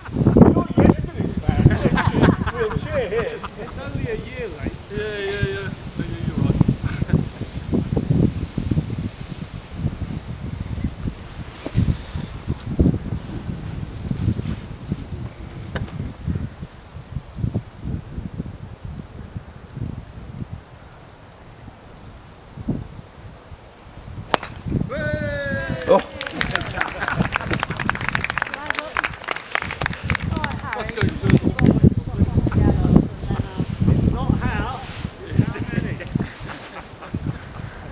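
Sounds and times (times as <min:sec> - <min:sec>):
wind buffeting microphone: 0:00.0 - 0:37.9
golf driver striking ball: 0:24.3 - 0:24.8.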